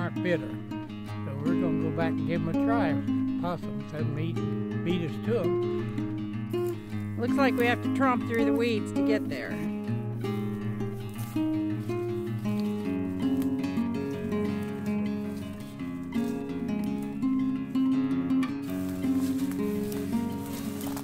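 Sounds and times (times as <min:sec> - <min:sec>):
plucked acoustic guitar melody: 0:00.0 - 0:21.0.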